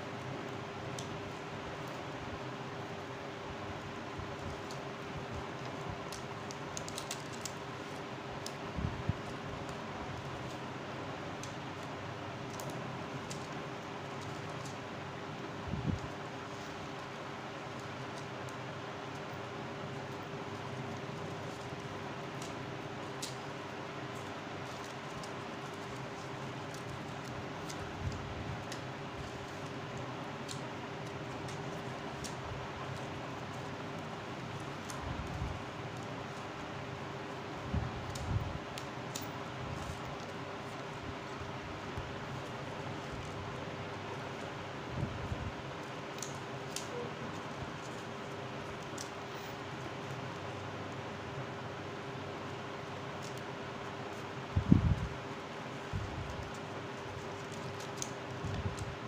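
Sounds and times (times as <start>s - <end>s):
paper rustling and ticking: 0.5s - 59.0s.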